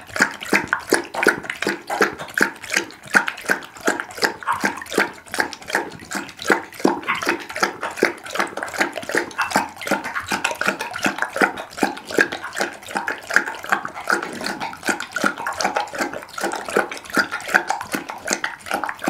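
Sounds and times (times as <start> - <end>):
dog lapping liquid: 0.0 - 19.0
tongue clicking against glass: 0.0 - 19.0.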